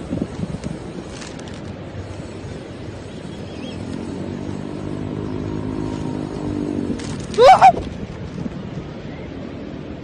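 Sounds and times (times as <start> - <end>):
engine hum: 0.0 - 10.0
outdoor background noise: 0.0 - 10.0.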